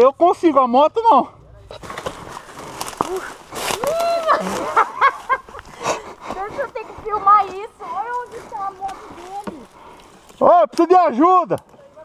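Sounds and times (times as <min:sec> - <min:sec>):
rustling leaves and branches: 0:01.5 - 0:12.0
footsteps on leaf litter: 0:01.8 - 0:10.4.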